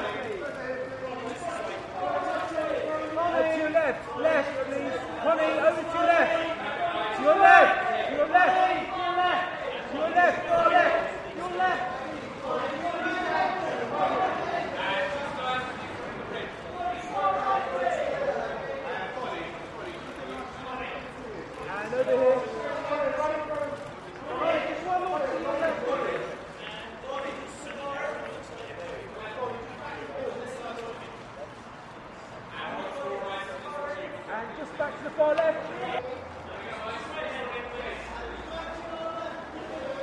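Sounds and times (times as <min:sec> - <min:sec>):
photographers shouting directions: 0:00.0 - 0:31.2
people talking and calling out: 0:00.0 - 0:40.0.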